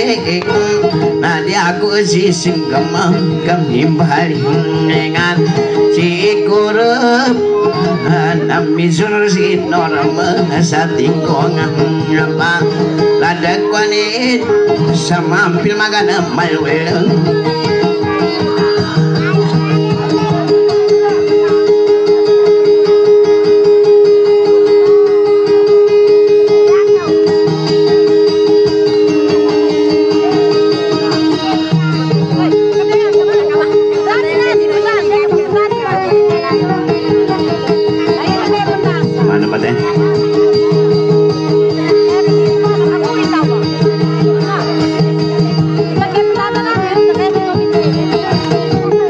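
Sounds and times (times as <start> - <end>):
person singing with vibrato: 0.0 - 44.6
plucked guitar: 0.0 - 49.0.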